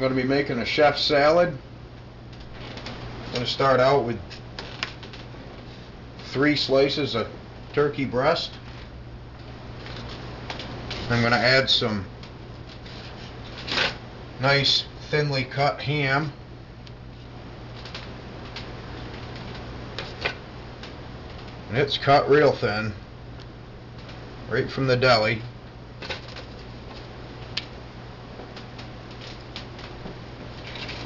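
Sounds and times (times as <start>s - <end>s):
steady low hum: 0.0s - 31.0s
paper plate rustling: 12.6s - 14.0s, 29.1s - 31.0s.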